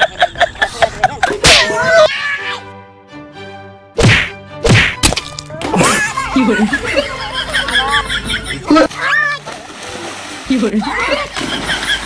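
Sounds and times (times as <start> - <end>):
sharp whack hits: 4.0 - 6.0.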